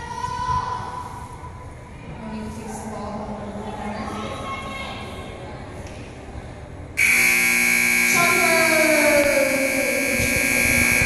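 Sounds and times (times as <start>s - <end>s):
arena buzzer long tone: 7.0s - 11.0s.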